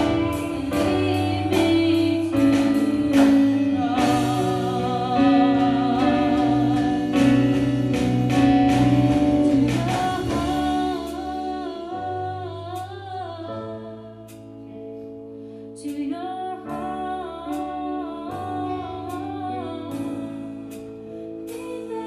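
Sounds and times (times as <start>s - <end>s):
person singing long notes: 0.0s - 8.5s
guitar chords: 0.0s - 22.0s.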